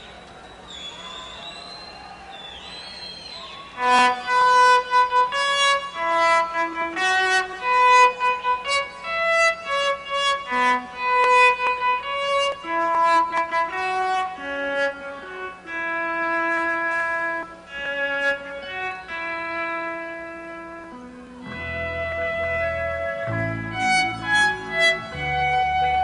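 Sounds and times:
keyboards and electric guitar melody: 3.8s - 26.0s
low bass notes: 17.2s - 26.0s.

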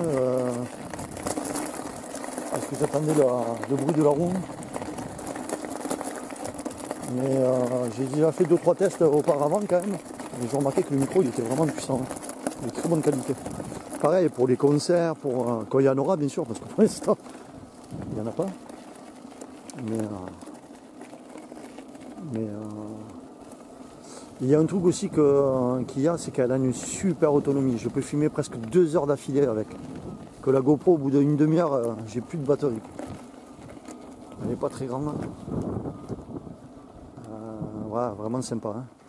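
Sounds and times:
tyre crackling over gravel: 0.0s - 39.0s.

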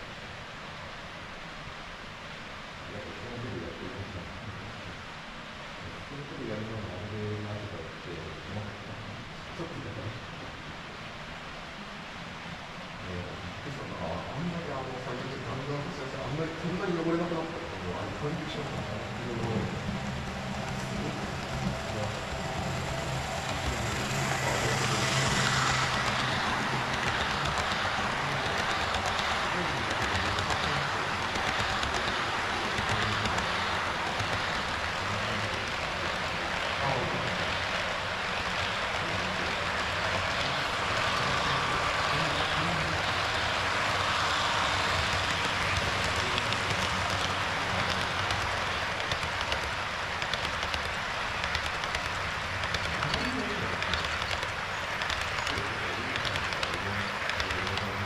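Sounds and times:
model train wheels rumbling: 13.8s - 58.0s
low motor hum: 18.0s - 28.6s.

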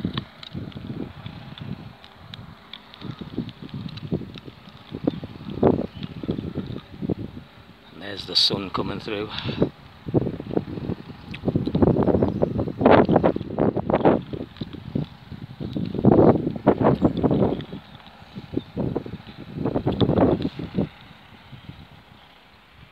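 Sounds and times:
wind buffeting microphone: 0.0s - 22.9s.

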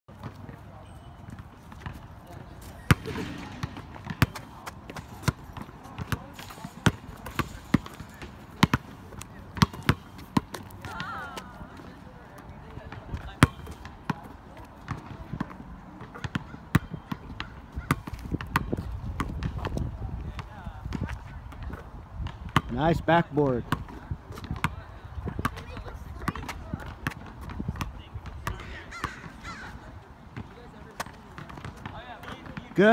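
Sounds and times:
basketball bouncing on asphalt: 0.1s - 32.9s.

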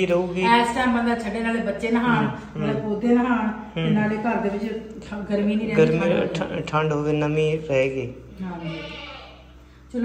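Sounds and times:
goat bleating: 8.6s - 9.5s.

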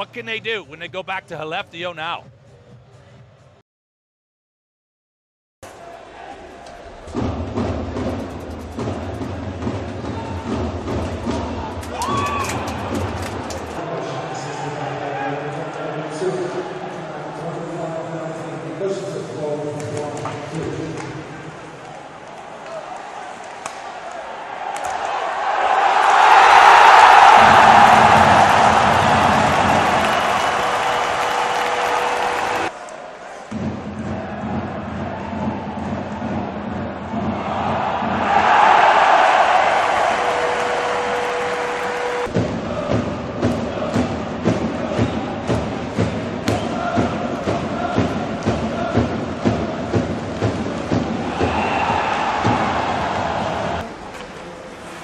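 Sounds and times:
arena crowd roaring: 5.7s - 7.7s, 9.5s - 17.8s, 21.1s - 53.9s
fast run of sharp beats: 6.9s - 13.8s.

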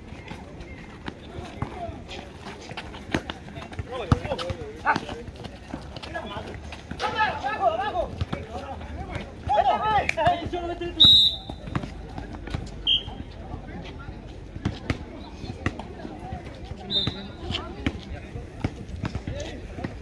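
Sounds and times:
basketball bouncing on asphalt: 1.0s - 13.2s, 14.6s - 20.0s
sneakers squeaking: 10.4s - 13.4s, 16.7s - 18.0s.

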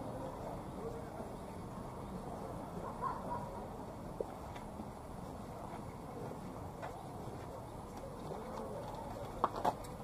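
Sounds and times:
steady outdoor hum: 0.0s - 10.0s.

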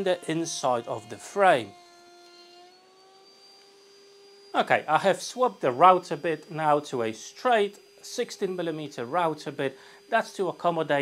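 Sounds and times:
router high whine: 0.0s - 11.0s.

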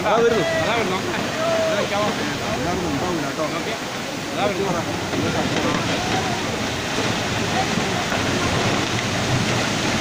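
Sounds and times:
heavy rain: 0.0s - 10.0s
landslide rushing rumble: 0.0s - 10.0s.

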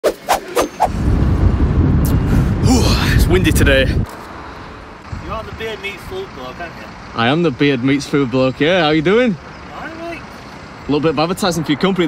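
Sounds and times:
wind buffeting microphone: 0.8s - 4.1s.

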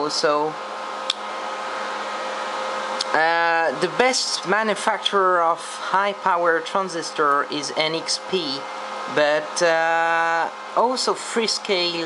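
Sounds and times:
faint hum tones: 0.0s - 12.0s
machine whir: 0.0s - 12.0s
short click: 1.0s - 1.2s.

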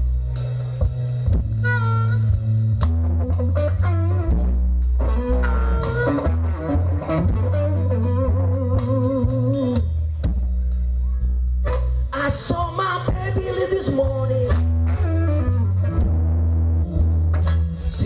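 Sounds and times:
bent guitar notes: 0.0s - 18.0s
blues band playing: 0.0s - 18.0s.

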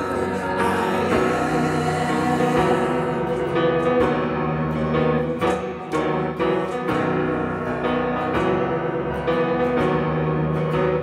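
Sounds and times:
acoustic guitar: 0.0s - 11.0s
keyboard piano chords: 0.0s - 11.0s.

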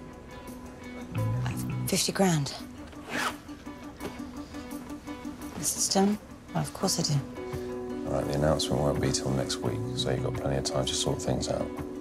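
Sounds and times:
background music with pulsing note: 0.0s - 12.0s.

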